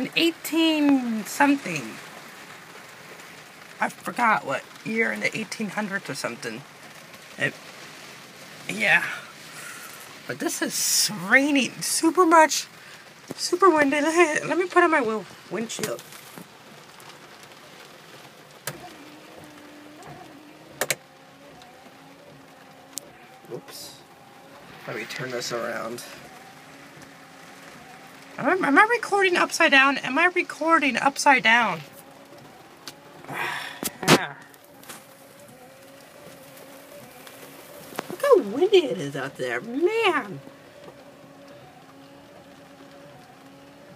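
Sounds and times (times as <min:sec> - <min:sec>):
heavy rain on car roof: 0:00.0 - 0:43.9
windshield wiper motor hum: 0:00.0 - 0:43.9.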